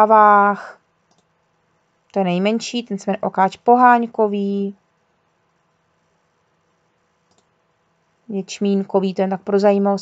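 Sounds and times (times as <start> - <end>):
faint click: 7.2 - 7.5.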